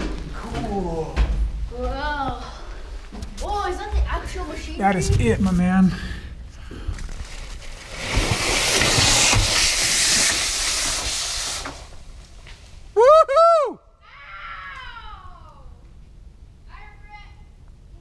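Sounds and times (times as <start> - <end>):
body sliding down metal slide: 7.1 - 12.2
person whooping: 13.0 - 15.4.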